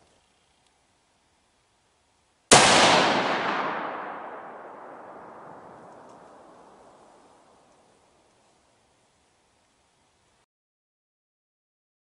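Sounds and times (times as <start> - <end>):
rifle shot with echo: 2.5 - 7.6.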